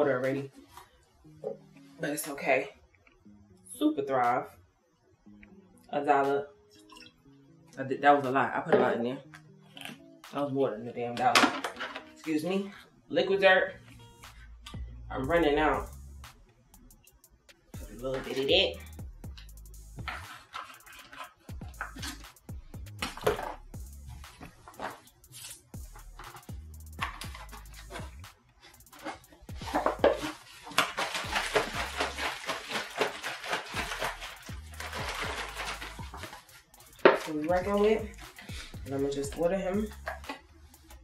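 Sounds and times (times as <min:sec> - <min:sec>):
music with bass beat: 0:13.8 - 0:20.3, 0:21.4 - 0:30.3, 0:31.2 - 0:32.3, 0:33.7 - 0:41.0
plastic jug being handled: 0:22.9 - 0:23.6, 0:24.3 - 0:25.6, 0:28.9 - 0:40.4
water sloshing in shaken jug: 0:29.0 - 0:38.3.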